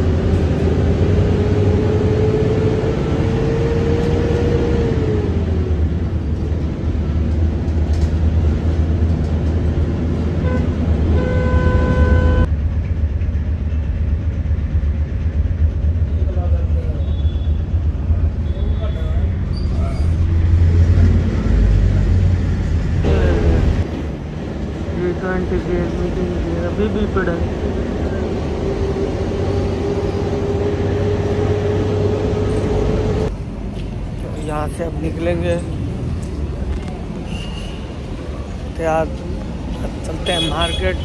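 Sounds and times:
bus engine and road noise: 0.0 - 41.0
horn steady note: 10.4 - 12.5.

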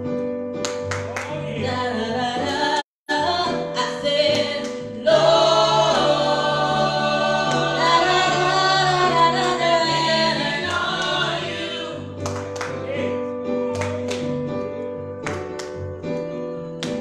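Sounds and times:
choir singing gospel in harmony: 3.4 - 13.2.

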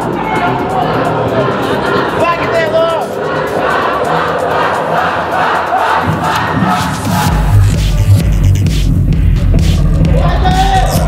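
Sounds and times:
audience shouting and cheering: 0.0 - 7.6, 9.8 - 11.0.

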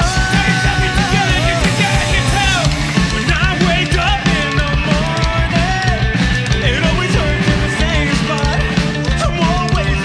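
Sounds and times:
man singing: 0.0 - 10.0
rock band playing: 0.0 - 10.0.

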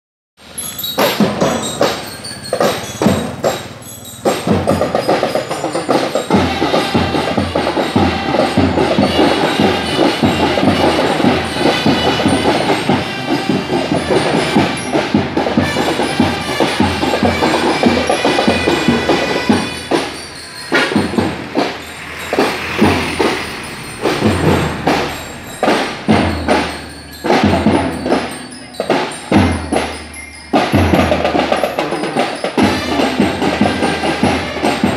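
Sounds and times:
bell lyre melody: 0.4 - 34.9
marching drum beat: 0.8 - 34.9.

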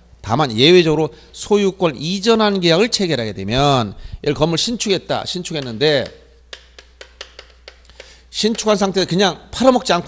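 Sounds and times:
chalk tapping on chalkboard: 5.5 - 8.8.

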